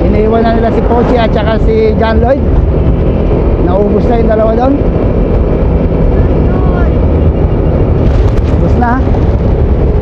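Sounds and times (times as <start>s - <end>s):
vehicle running on road: 0.0s - 10.0s
wind rumble on microphone: 0.0s - 10.0s.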